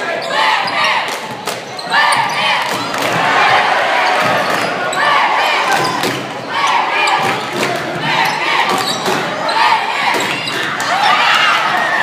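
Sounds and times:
chatter and shouts: 0.0s - 12.0s.

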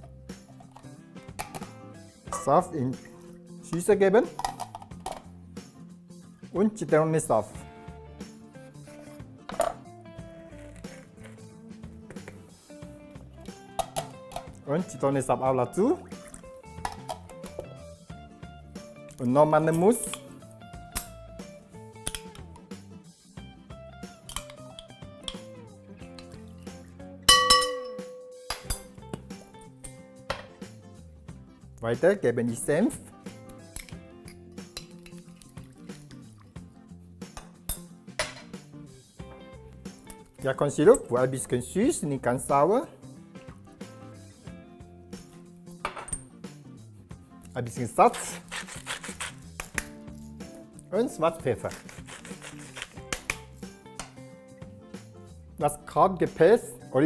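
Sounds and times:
metal utensil clinking on glass bowl: 2.3s - 2.6s, 27.3s - 28.9s
salt mill grinding salt: 48.1s - 50.4s, 51.6s - 53.6s.

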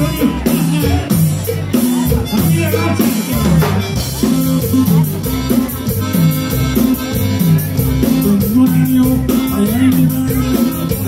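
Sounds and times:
accordion: 0.0s - 11.0s
bass line: 0.0s - 11.0s
drum kit: 0.0s - 11.0s
guitars: 0.0s - 11.0s.

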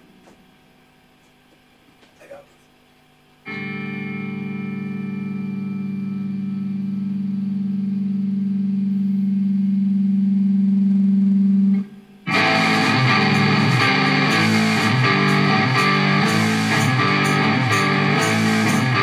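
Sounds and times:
distorted electric guitar riff: 3.4s - 19.0s
electric guitar chord with effects: 3.4s - 19.0s.

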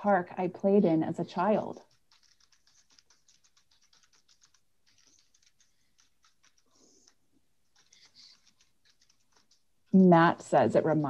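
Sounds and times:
typing on computer keyboard: 1.7s - 11.0s.

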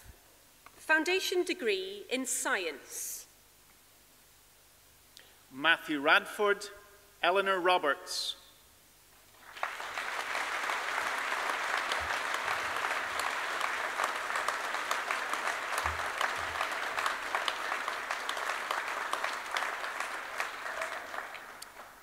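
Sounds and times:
audience applause: 9.4s - 22.0s.

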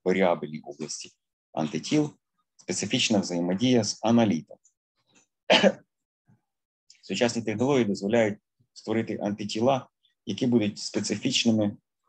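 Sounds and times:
man clearing his throat: 5.5s - 5.8s.

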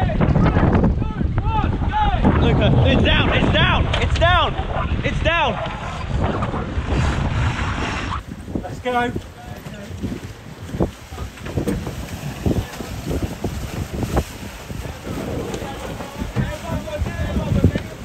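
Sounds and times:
water slapping boat hull: 0.0s - 18.0s
wind buffeting microphone: 0.0s - 18.0s
water splashes: 2.0s - 18.0s.

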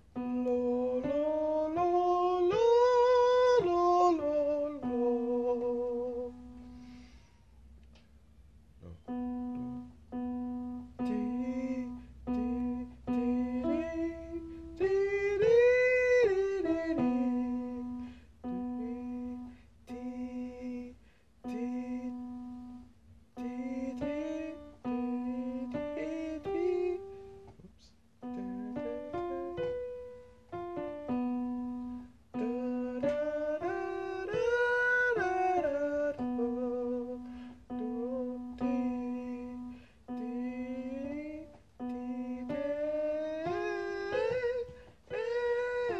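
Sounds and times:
electronic keyboard notes: 0.0s - 8.0s, 8.8s - 20.8s, 21.4s - 27.6s, 28.2s - 45.9s
person singing scale exercises: 10.8s - 45.9s.

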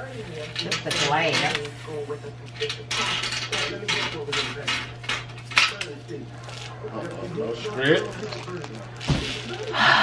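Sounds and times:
plastic packaging rustling: 5.3s - 9.8s.

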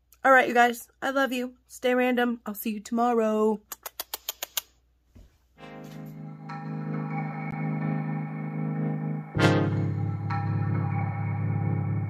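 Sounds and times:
lip-smacking kiss sounds: 3.6s - 4.8s
music with low sustained chord: 5.6s - 12.0s.

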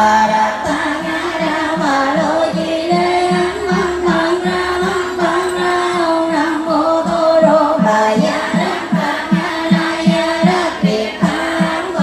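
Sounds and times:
group chanting: 0.0s - 12.0s
steady low drum beat: 0.0s - 12.0s.

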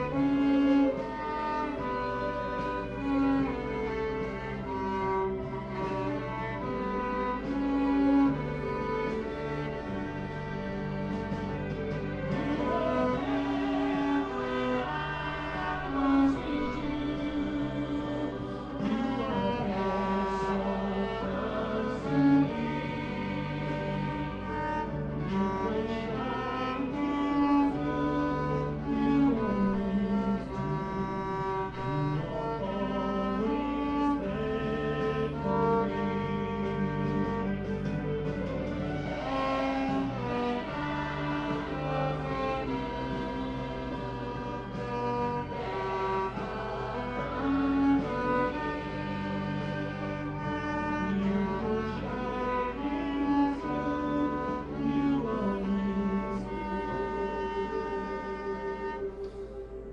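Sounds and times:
low bowed fiddle melody: 0.0s - 59.9s.

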